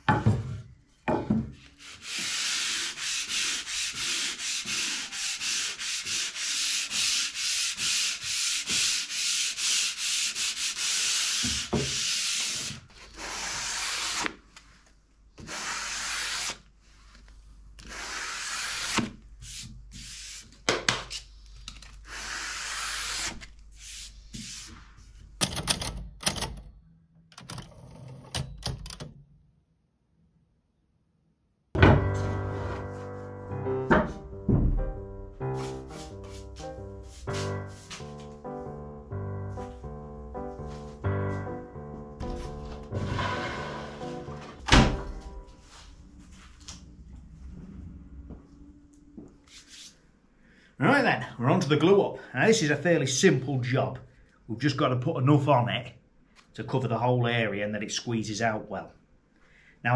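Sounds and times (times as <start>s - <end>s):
sandpaper rubbing on wood: 1.8s - 14.3s, 15.4s - 16.6s, 17.8s - 20.6s, 22.1s - 24.9s.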